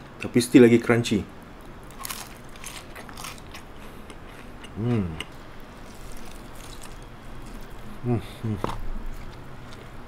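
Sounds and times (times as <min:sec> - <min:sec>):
person chewing crunchy food: 0:01.8 - 0:10.0.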